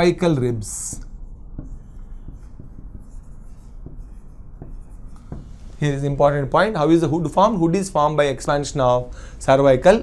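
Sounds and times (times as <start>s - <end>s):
marker pen writing on whiteboard: 0.0s - 7.1s.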